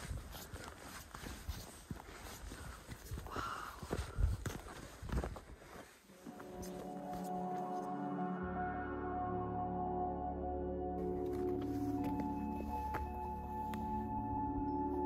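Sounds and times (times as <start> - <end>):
footsteps on dry grass and rocks: 0.0 - 8.2, 11.0 - 14.2
ambient music with long held tones: 6.1 - 15.0.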